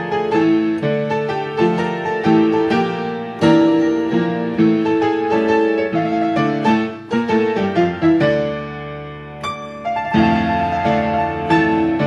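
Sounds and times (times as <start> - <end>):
solo piano playing tango: 0.0 - 12.0.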